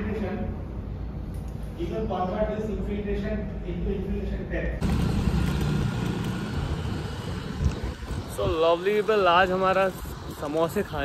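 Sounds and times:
bicycle tyres rolling on pavement: 4.8s - 11.0s
wind buffeting microphone: 4.8s - 11.0s.

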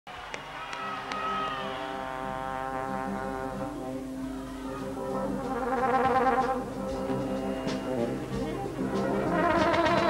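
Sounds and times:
brass section sustained chord: 1.6s - 10.0s
low brass note: 1.8s - 10.0s.

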